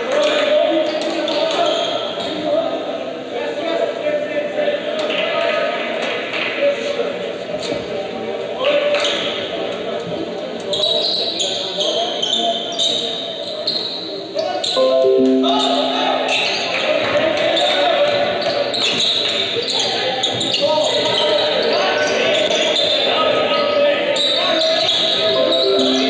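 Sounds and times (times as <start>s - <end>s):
crowd voices in large hall: 0.0s - 26.0s.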